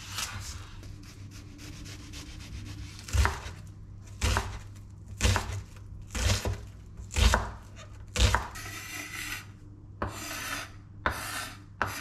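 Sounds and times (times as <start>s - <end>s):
knife scraping through onion: 0.0s - 12.0s.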